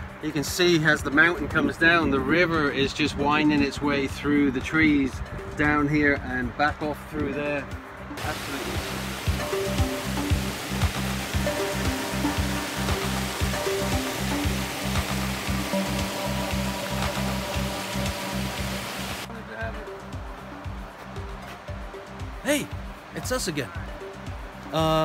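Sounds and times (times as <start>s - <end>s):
background music with bass line: 0.0s - 25.0s
water rushing over rocks: 8.2s - 19.3s.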